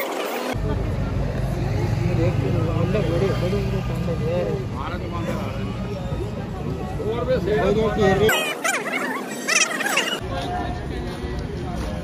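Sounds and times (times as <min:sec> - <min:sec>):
indistinct voices talking: 0:00.0 - 0:10.9.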